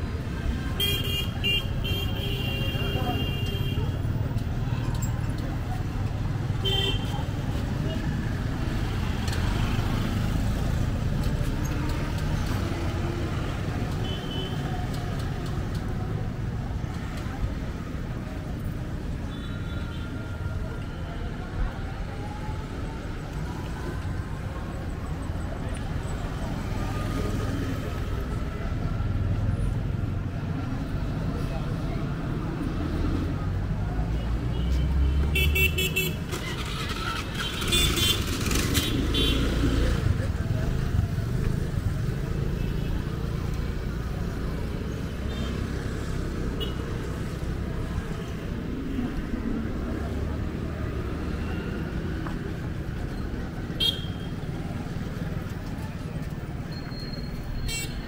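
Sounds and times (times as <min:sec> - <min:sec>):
traffic rumble of passing vehicles: 0:00.0 - 0:58.0.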